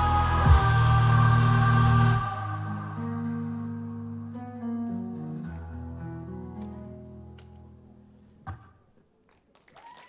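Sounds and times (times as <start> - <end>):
acoustic guitar music: 2.5 - 8.4
applause: 9.2 - 10.0
audience whooping and cheering: 9.7 - 10.0.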